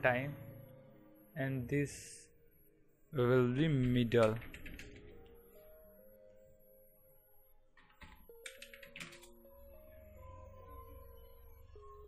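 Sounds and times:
faint background music: 0.0s - 12.0s
computer clicks: 3.6s - 5.4s, 7.8s - 9.4s.

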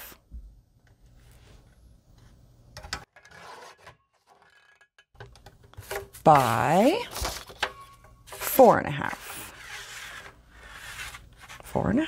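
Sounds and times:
paper rubbing: 9.1s - 11.8s.

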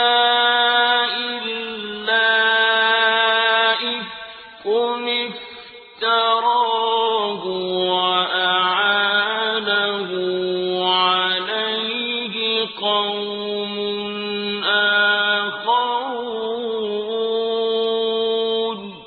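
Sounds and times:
person chanting melodic recitation: 0.0s - 19.0s.

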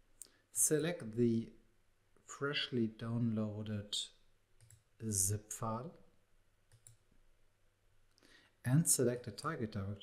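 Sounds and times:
computer mouse clicks: 4.6s - 4.9s, 6.7s - 7.0s.

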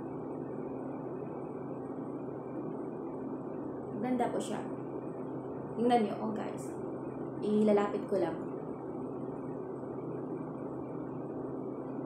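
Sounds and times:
low even hum: 0.0s - 12.0s.

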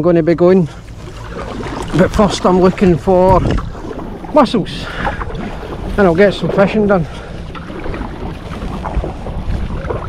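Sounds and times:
paddle splashing in water: 0.7s - 10.0s
wind noise on microphone: 1.0s - 10.0s.

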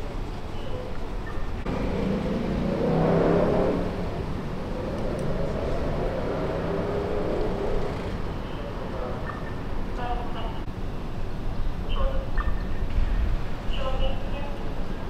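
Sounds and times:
vehicle passing: 1.6s - 10.6s.

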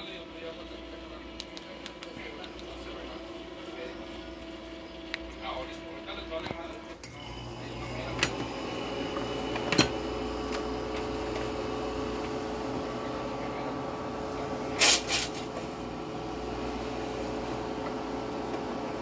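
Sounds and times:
electrical hum with held tone: 0.0s - 19.0s
television voices: 0.0s - 19.0s.

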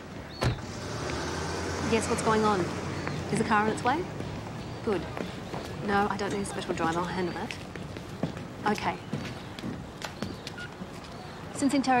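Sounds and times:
car passing close by: 0.6s - 3.8s.

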